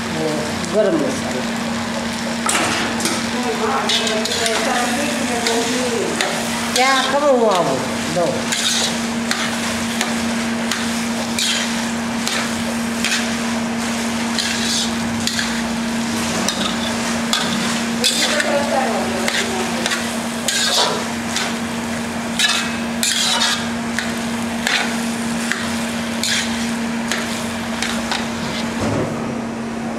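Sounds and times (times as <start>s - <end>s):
food sizzling in pan: 0.0s - 28.8s
steady hum: 0.0s - 29.9s
metal spatula scraping pan: 8.5s - 13.4s, 14.3s - 21.6s, 22.4s - 28.7s.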